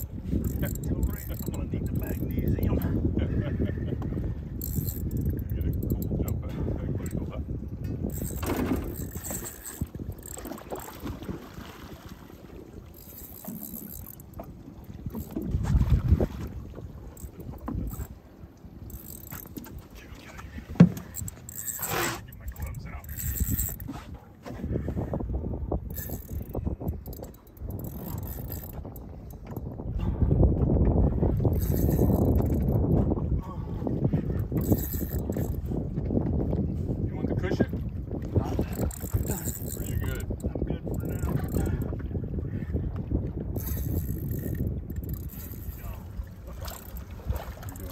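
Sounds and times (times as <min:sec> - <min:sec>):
water lapping at boat hull: 0:00.0 - 0:47.9
wind buffeting microphone: 0:00.0 - 0:47.9.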